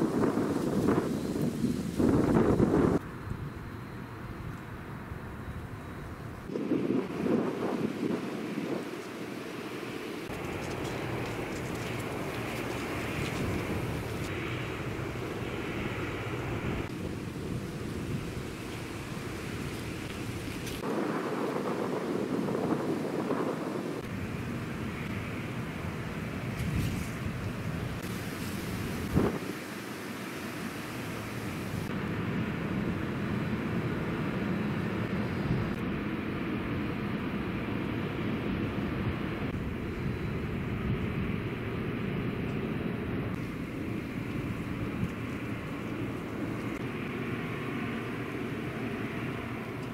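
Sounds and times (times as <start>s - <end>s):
distant traffic: 0.0s - 49.9s
wind noise: 0.0s - 49.9s.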